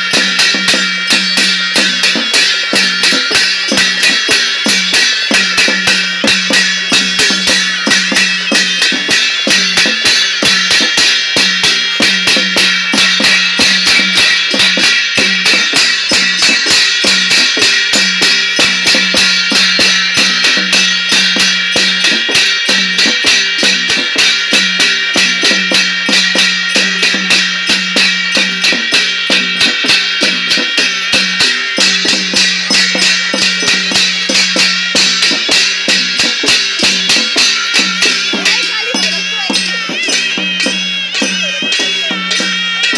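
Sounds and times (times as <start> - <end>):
drum and cymbal music: 0.0 - 42.9.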